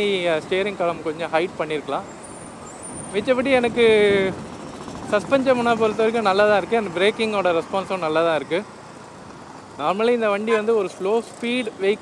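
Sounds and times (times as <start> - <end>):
man talking: 0.0 - 2.1, 3.1 - 4.4, 5.1 - 8.7, 9.8 - 12.0
wind and scooter road noise: 0.0 - 12.0.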